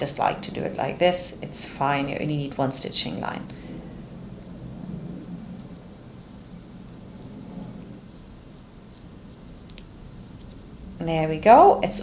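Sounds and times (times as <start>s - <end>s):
coat fabric rustling: 2.3s - 12.0s.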